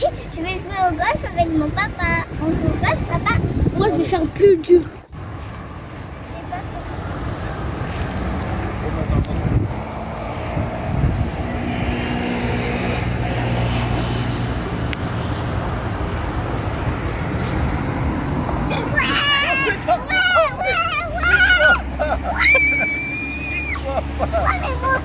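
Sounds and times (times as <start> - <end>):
outdoor background rumble and hiss: 0.0 - 25.0.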